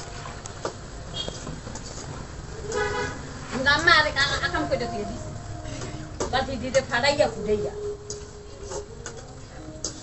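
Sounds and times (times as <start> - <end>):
horn honk: 1.1 - 1.4, 2.6 - 3.3.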